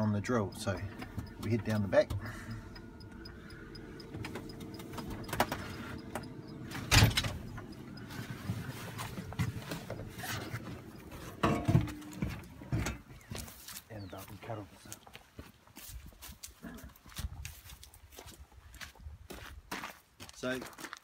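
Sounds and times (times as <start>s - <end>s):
low hum: 0.0s - 13.4s
knocks and footsteps: 0.0s - 21.0s
loud clunk: 5.2s - 7.5s, 11.2s - 13.1s.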